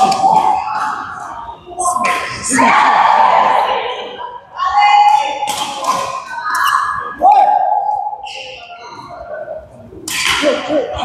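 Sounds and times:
voices on a court: 0.0s - 11.0s.

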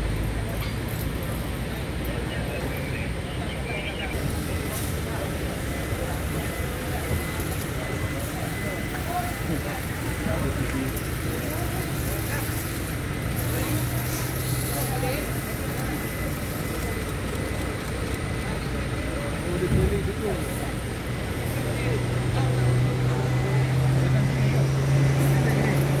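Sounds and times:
people talking: 0.0s - 26.0s
truck engine idling: 0.0s - 26.0s.

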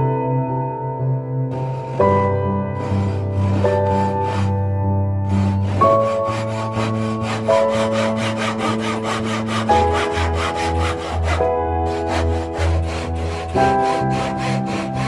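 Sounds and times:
background music: 0.0s - 15.0s
handsaw rasping through wood: 1.5s - 15.0s.

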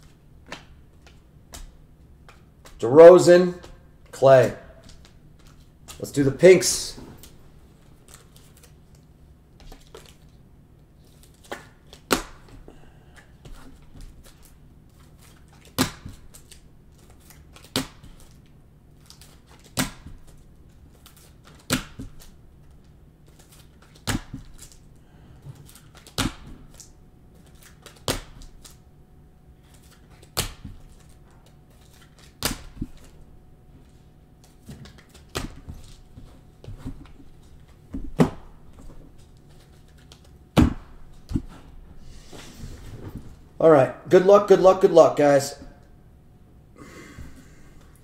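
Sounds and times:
trading cards snapping: 20.9s - 22.3s, 29.6s - 33.1s.

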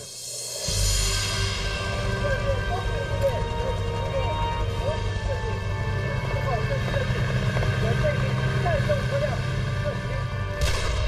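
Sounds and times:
tank engine and track rumble: 0.8s - 11.0s.

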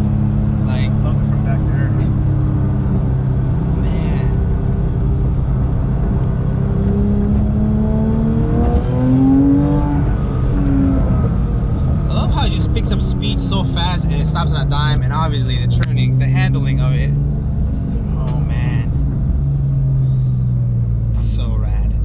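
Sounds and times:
car engine accelerating from inside cabin: 0.0s - 22.0s.

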